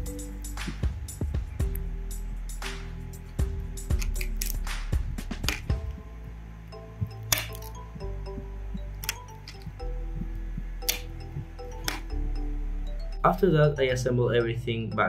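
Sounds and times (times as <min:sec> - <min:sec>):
music with steady bass line: 0:00.0 - 0:15.0
plastic snapping off: 0:03.9 - 0:06.0, 0:07.2 - 0:07.8, 0:09.0 - 0:09.7, 0:10.8 - 0:11.1.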